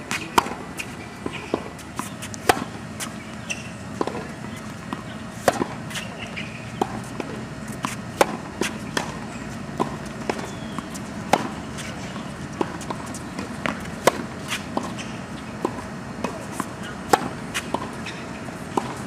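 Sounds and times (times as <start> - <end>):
tennis racket hitting ball: 0.1 - 19.0.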